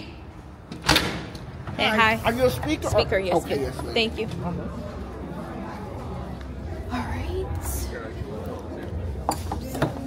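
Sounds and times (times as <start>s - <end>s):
woman speaking: 6.9s - 7.9s.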